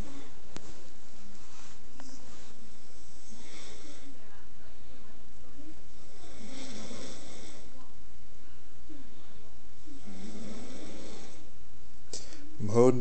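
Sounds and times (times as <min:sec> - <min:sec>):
person breathing heavily: 0:02.5 - 0:04.2
low throat noise: 0:05.8 - 0:07.8, 0:09.6 - 0:11.8.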